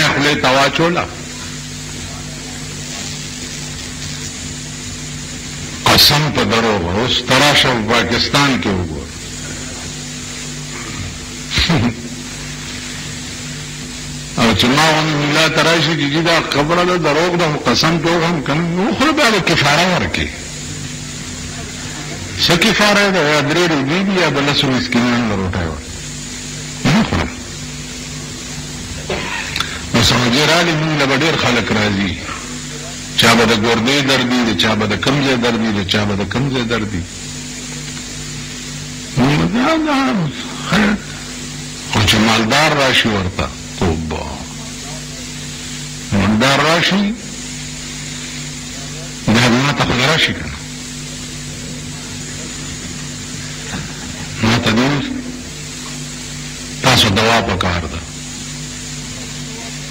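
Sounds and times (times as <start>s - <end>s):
even hiss: 0.0s - 59.9s
low electrical hum: 0.0s - 59.9s.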